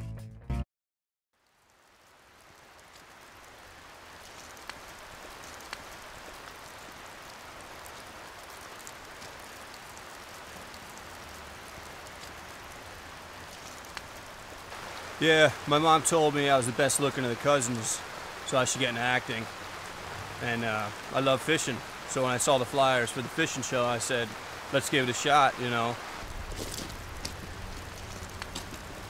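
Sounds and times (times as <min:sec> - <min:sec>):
water noise: 0:01.5 - 0:29.0
faint ticks: 0:04.2 - 0:12.6, 0:26.6 - 0:29.0.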